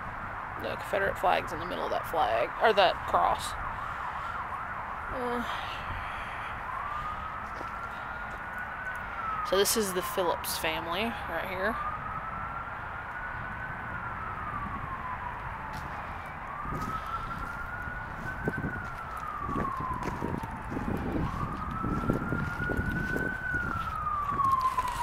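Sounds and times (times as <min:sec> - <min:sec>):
ambulance siren wailing: 0:00.0 - 0:25.0.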